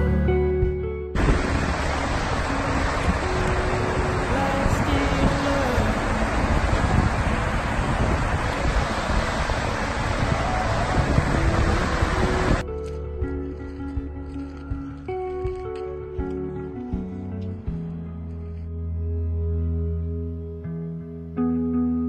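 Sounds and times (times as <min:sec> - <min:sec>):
waterfall rushing water: 0:01.2 - 0:12.6.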